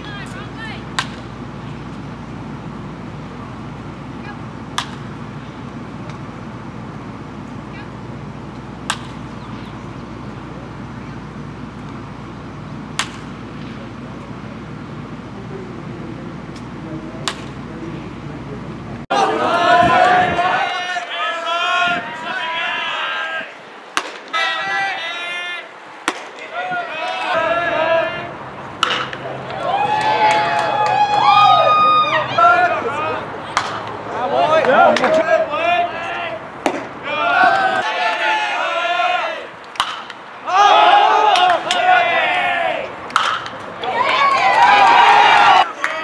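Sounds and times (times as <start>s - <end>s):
steady background noise: 0.0s - 46.0s
wooden bat hitting ball: 0.9s - 1.3s, 4.7s - 5.1s, 8.8s - 9.3s, 12.9s - 13.4s, 17.2s - 17.6s, 23.9s - 24.4s, 26.0s - 26.5s, 28.8s - 31.0s, 33.5s - 34.0s, 36.6s - 37.0s, 39.7s - 40.2s, 43.1s - 43.7s
people cheering: 19.1s - 23.7s, 24.3s - 46.0s.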